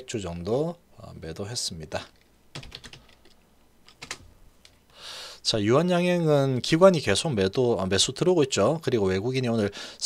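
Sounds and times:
keyboard typing: 2.5 - 4.8.

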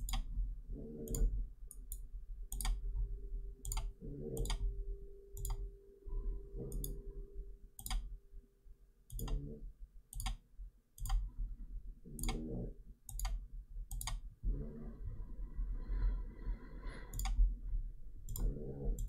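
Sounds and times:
low steady hum: 0.0 - 19.0
computer mouse buttons clicking: 1.0 - 2.8, 3.6 - 4.6, 5.4 - 5.6, 6.7 - 7.0, 7.8 - 8.1, 9.1 - 9.5, 10.1 - 10.4, 11.0 - 11.3, 12.1 - 14.2, 17.1 - 17.4, 18.3 - 19.0.

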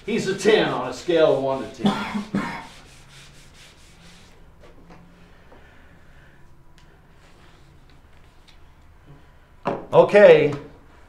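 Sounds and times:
eraser scrubbing whiteboard: 0.0 - 4.4.

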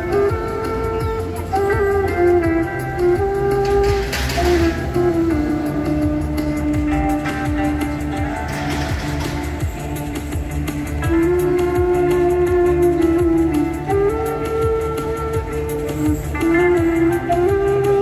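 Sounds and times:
backing track with guitar and bass: 0.0 - 18.0
wooden flute slow melody: 0.0 - 18.0.

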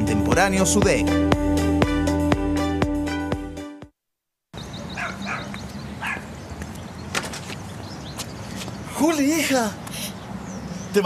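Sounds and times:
outdoor background noise: 4.5 - 11.0
small dog yipping: 5.0 - 6.3.

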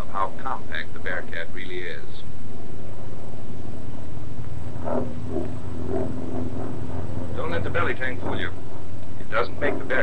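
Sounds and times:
propeller plane engine drone: 0.0 - 10.0.

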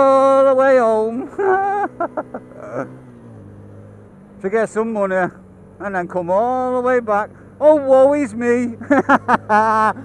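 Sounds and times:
motorcycle engine running: 0.0 - 10.0
road and wind noise: 0.0 - 10.0.

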